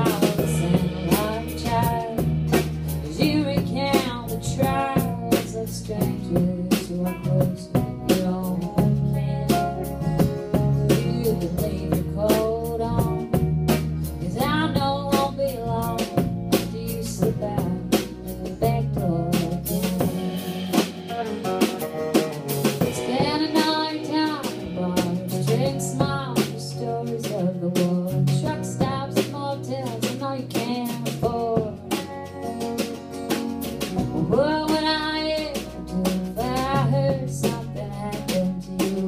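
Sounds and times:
acoustic guitar: 0.0 - 39.0
bass guitar: 0.0 - 39.0
drum kit: 0.0 - 39.0
electric guitar lead: 0.0 - 39.0.

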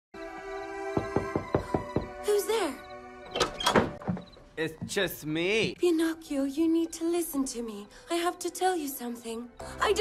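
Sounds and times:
soft film score music: 0.2 - 10.0
wooden door thunks: 1.0 - 2.2, 3.4 - 5.0.

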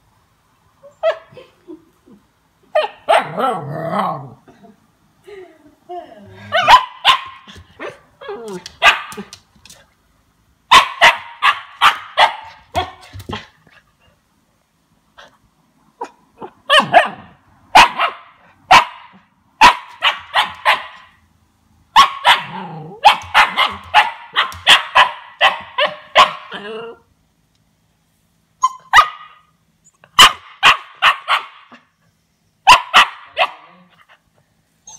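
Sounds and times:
puppy barking: 2.8 - 3.5, 6.5 - 7.9, 8.8 - 9.4, 10.7 - 13.5, 16.0 - 21.2, 21.9 - 26.7, 28.6 - 29.5, 30.2 - 31.9, 32.7 - 33.9.

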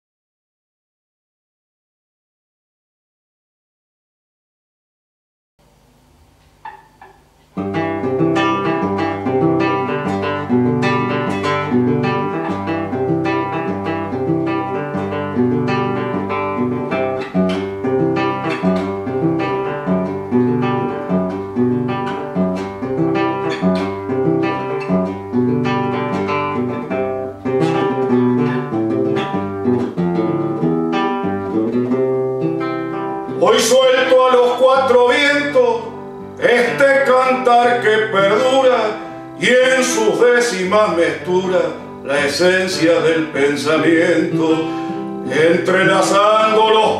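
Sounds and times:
solo classical guitar: 6.4 - 46.9.

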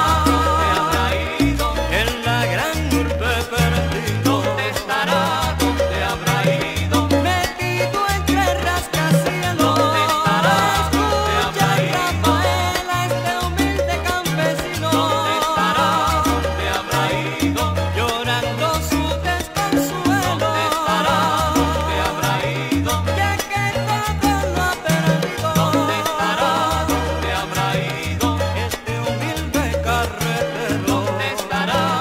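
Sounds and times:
instrumental salsa music: 0.0 - 32.0.

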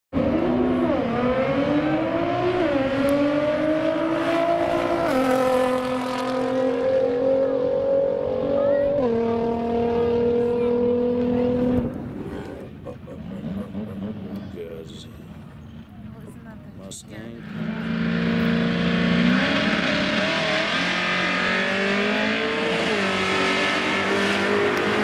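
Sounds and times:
car engine at full throttle: 0.1 - 16.0, 17.1 - 25.0.

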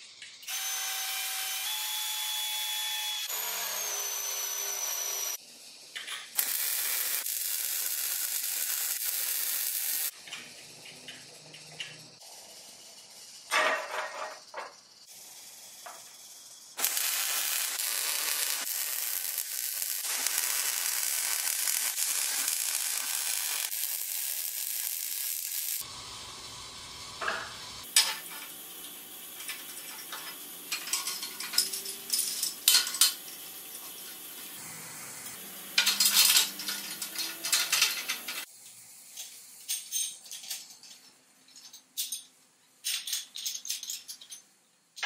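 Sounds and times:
welding arc sizzling: 0.3 - 10.6, 15.0 - 39.7
steel parts clinking and rattling: 29.4 - 34.1, 35.8 - 38.5, 39.2 - 45.0.

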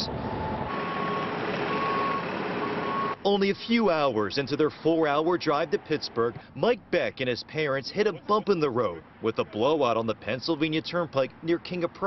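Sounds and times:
truck backup alarm beeping: 0.0 - 5.4
traffic noise: 0.0 - 12.0.

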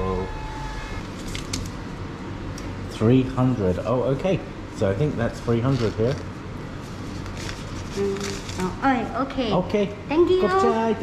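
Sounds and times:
low room hum: 0.0 - 11.0
paper receipt rustling: 5.5 - 8.8.

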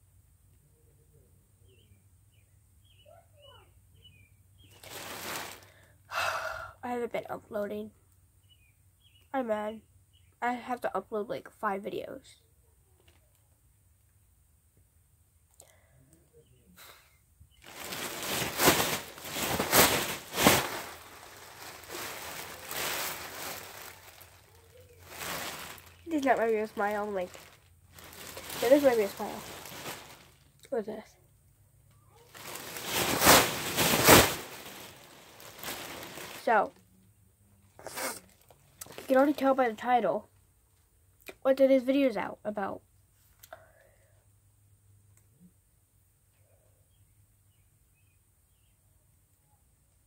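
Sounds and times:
plastic bag rustling: 4.7 - 5.8, 17.6 - 30.5, 32.2 - 36.8, 38.3 - 39.6
girl sighing: 5.7 - 6.8.

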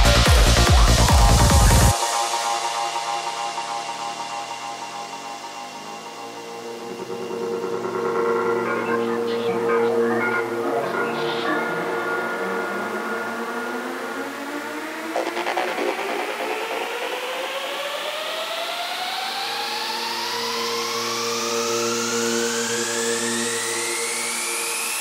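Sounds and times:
synthesizer riser sweeping upward: 0.0 - 25.0
sustained synth tones: 5.6 - 18.2
glitchy noise burst: 15.1 - 17.4.

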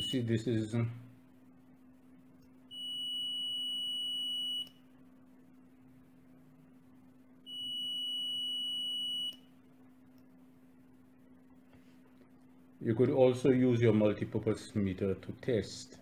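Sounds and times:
multimeter continuity beep: 0.0 - 0.4, 2.7 - 5.0, 7.4 - 9.6.

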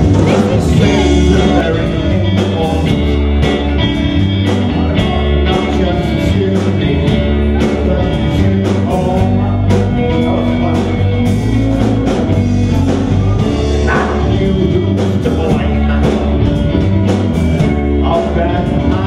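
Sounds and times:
bass guitar: 0.0 - 19.0
drum kit: 0.0 - 19.0
electric guitars: 0.0 - 19.0.

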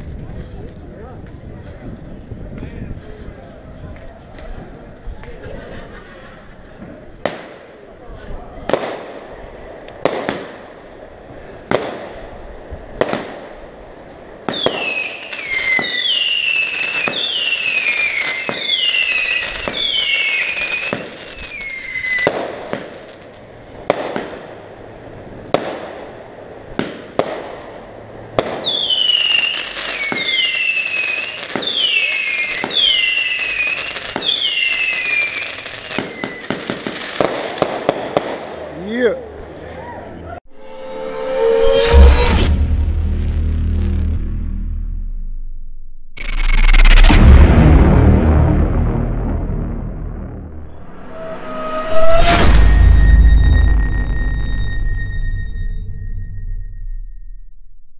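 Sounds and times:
firework shots: 6.8 - 7.9, 8.6 - 11.0, 11.6 - 38.7, 43.3 - 51.8
falling crackling firework whistles: 14.5 - 23.4, 28.5 - 38.2, 46.2 - 47.3, 50.7 - 57.4.

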